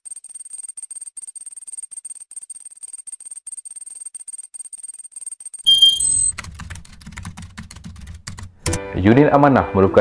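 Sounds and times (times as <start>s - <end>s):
typing on computer keyboard: 0.0s - 8.5s.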